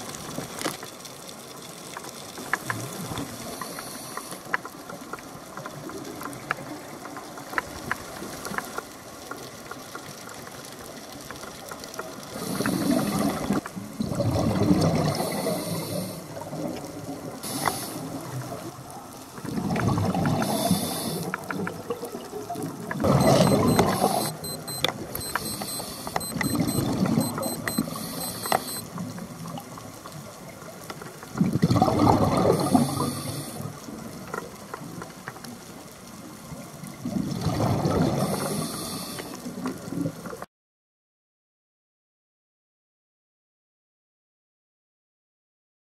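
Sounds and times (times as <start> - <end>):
exhaled air bubbling underwater: 12.3 - 40.4.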